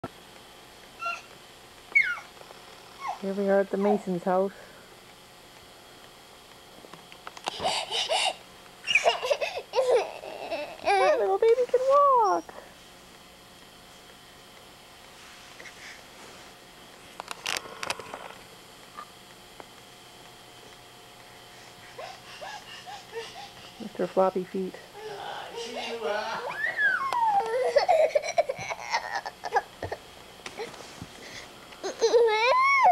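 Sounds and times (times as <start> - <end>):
baby squealing: 1.0 - 1.3, 2.0 - 2.3, 26.5 - 28.0
toddler laughing: 7.6 - 11.3, 22.0 - 23.8, 25.0 - 29.7, 31.8 - 32.9.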